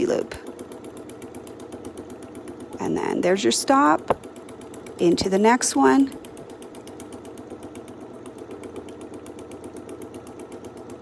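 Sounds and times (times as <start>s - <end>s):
sewing machine stitching: 0.0s - 11.0s.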